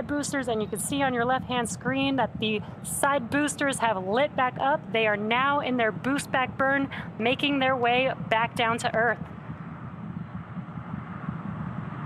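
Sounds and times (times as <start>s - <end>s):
steady low rumbling: 0.0s - 12.0s.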